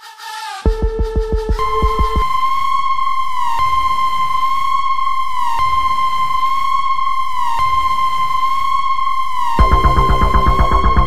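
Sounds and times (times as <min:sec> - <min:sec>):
electronic synthesizer music: 0:00.7 - 0:11.0.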